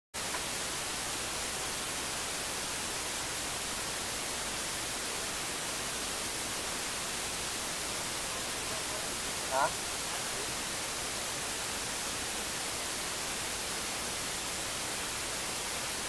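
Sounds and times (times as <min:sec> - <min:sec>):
static hiss: 0:00.2 - 0:16.0.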